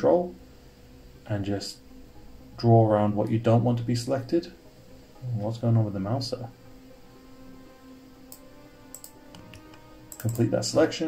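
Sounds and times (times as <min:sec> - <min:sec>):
quiet background music: 0:00.0 - 0:11.0
computer mouse clicks: 0:08.3 - 0:10.5.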